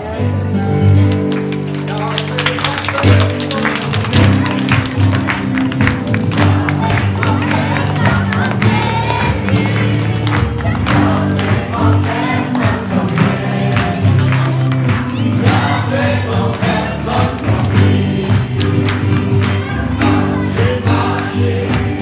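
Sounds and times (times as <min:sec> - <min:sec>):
hand clapping: 0:01.0 - 0:22.0
congregation singing worship song: 0:03.6 - 0:22.0.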